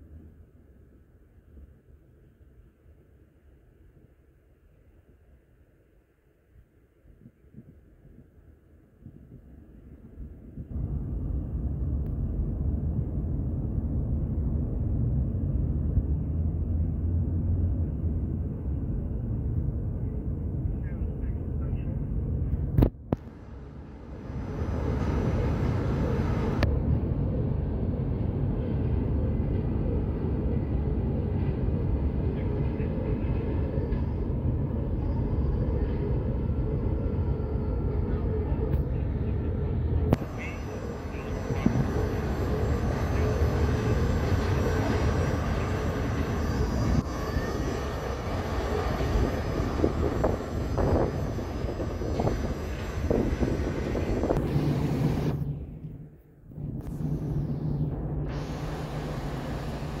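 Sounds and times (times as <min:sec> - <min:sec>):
steady low hum: 0:00.0 - 1:00.0
city traffic rumble: 0:10.0 - 1:00.0.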